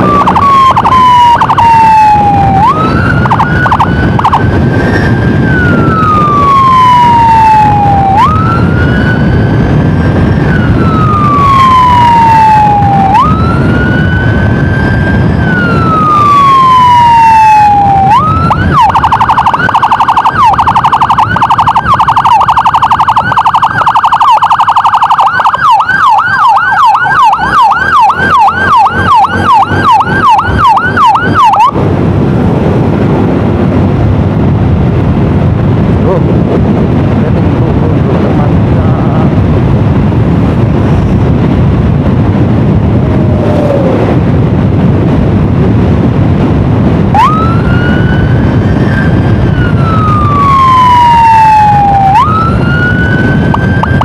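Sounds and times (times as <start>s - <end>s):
emergency siren wailing: 0.0s - 54.0s
motorcycle riding noise: 0.0s - 54.0s.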